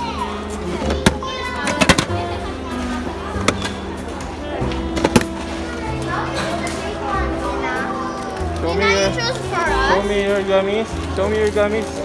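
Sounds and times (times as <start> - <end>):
children talking and calling out: 0.0 - 11.1
background music: 0.0 - 12.0.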